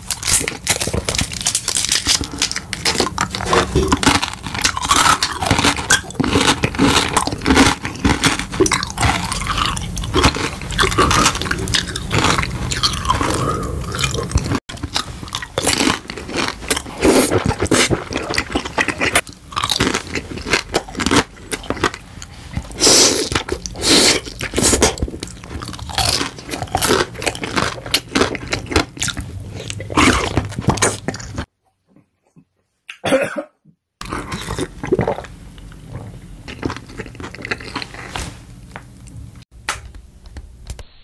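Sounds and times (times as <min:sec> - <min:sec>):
man chewing crunchy food: 0:00.0 - 0:31.5, 0:34.0 - 0:39.3
man coughing: 0:32.9 - 0:33.6.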